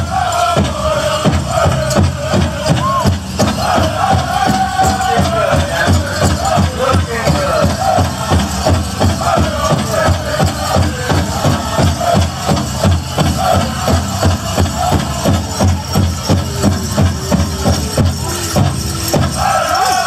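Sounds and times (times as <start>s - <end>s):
drum steady beat: 0.0s - 20.0s
high singing voices: 0.0s - 20.0s.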